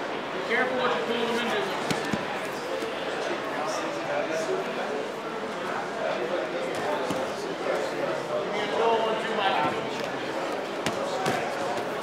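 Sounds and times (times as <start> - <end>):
voices in room: 0.0 - 12.0.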